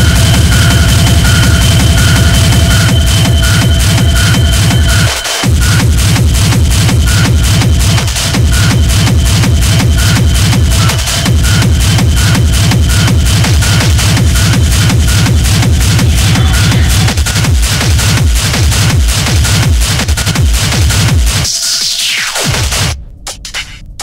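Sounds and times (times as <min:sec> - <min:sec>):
steady high tone: 0:00.0 - 0:06.4
hard techno kick drum beat: 0:00.0 - 0:24.0.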